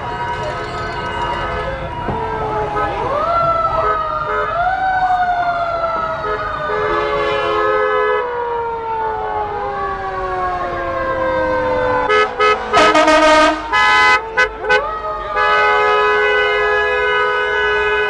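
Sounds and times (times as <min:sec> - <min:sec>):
fire engine siren: 0:00.0 - 0:18.0
vehicle horns honking: 0:03.8 - 0:04.6, 0:06.2 - 0:08.3, 0:12.1 - 0:18.0.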